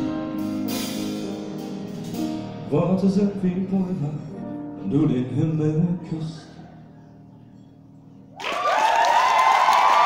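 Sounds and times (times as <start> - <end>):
drum kit: 0.0 - 3.4.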